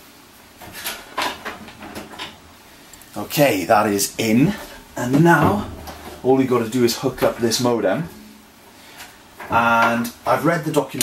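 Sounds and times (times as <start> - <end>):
cable handling rustles and knocks: 0.4 - 11.0.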